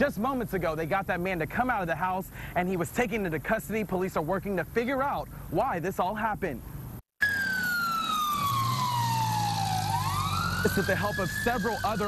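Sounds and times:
emergency siren wailing: 7.2s - 12.0s.

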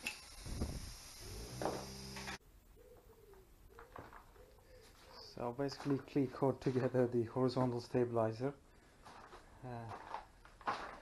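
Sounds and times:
pigeon cooing: 2.7s - 5.4s.

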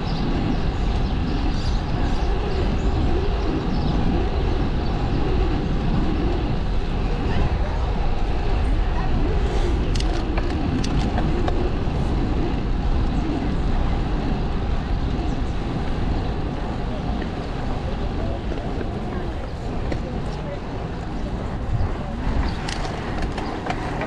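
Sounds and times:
wind on microphone: 0.0s - 24.0s.

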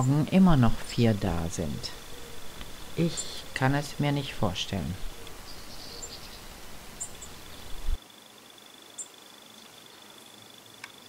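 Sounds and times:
high bird chirps: 5.0s - 7.9s.

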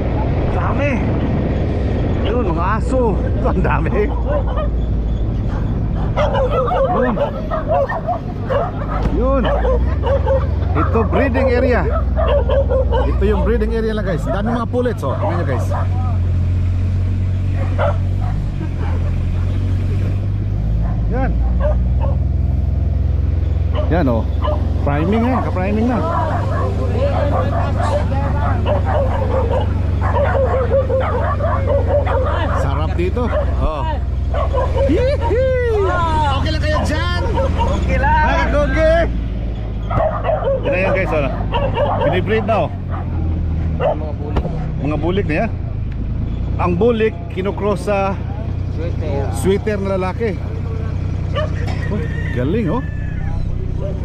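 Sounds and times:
engine humming: 0.0s - 54.0s
dogs barking and yipping: 2.1s - 44.9s, 48.5s - 54.0s.

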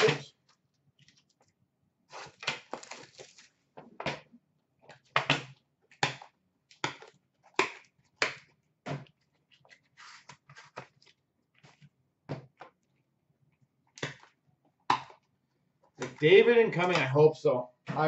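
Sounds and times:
rustling scrape: 9.8s - 10.8s.

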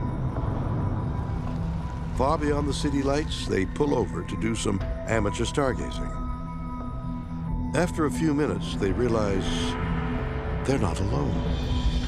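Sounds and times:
droning music score: 0.0s - 12.0s.

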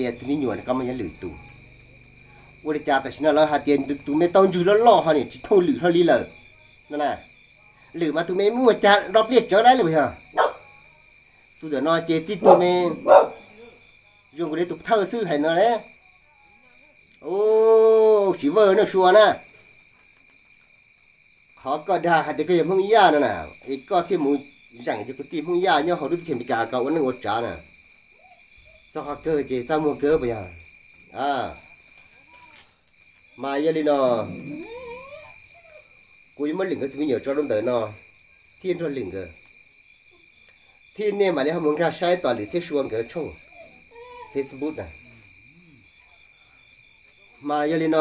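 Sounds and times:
insect chirring: 0.0s - 48.0s
sharp animal call: 12.4s - 13.8s
wavering animal call: 34.2s - 36.0s.

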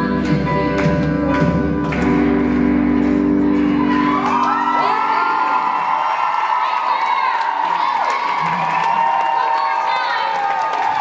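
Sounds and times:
audience whooping and cheering: 3.4s - 11.0s.

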